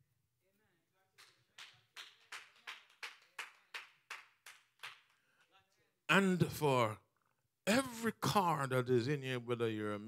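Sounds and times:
rhythmic hand clapping: 1.2 - 5.4.

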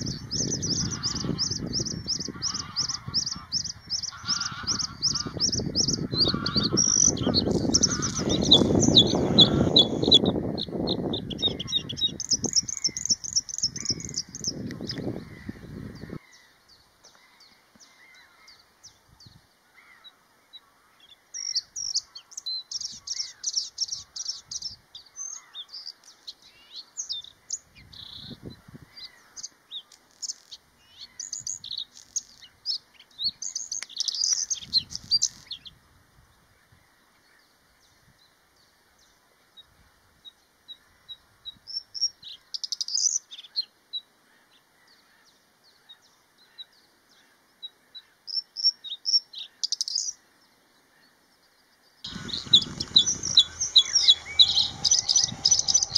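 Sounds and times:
bird singing high notes: 0.0 - 13.0, 52.1 - 55.9
low rumble: 52.1 - 55.9.

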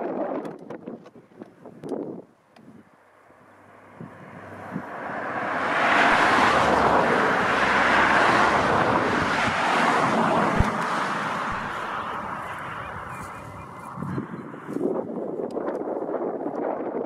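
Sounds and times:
vehicle passing by: 3.2 - 14.8.

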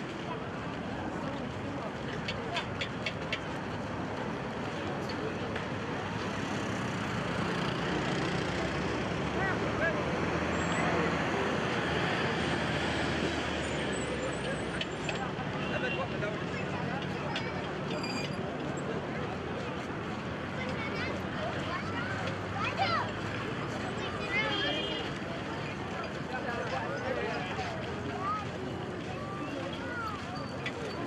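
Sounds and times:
indistinct crowd voices: 0.0 - 31.0
traffic passing: 0.0 - 31.0.

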